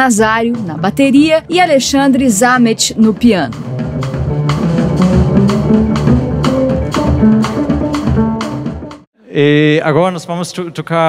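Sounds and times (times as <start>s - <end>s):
drum kit beat: 0.0s - 9.1s
double bass: 3.4s - 9.0s.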